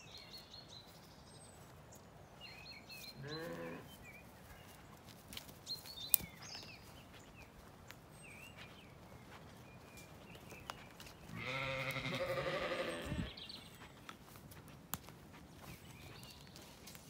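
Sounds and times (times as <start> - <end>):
sheep bleating: 3.2 - 3.9, 11.3 - 13.3.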